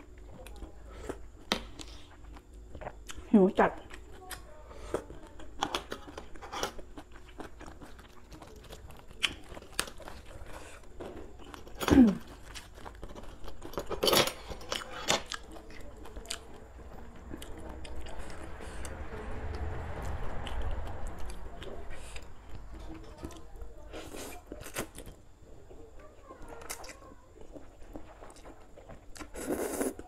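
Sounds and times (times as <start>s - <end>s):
close chewing and crunching: 0.0s - 30.0s.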